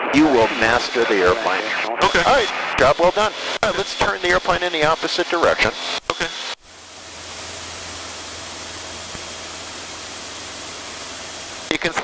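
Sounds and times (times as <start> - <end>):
light aircraft engine drone: 0.5 - 12.0
airflow hiss: 6.7 - 11.8.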